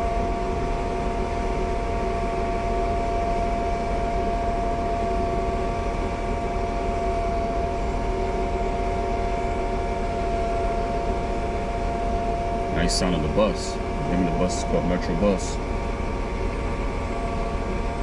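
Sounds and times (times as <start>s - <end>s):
high even whine: 0.0s - 18.0s.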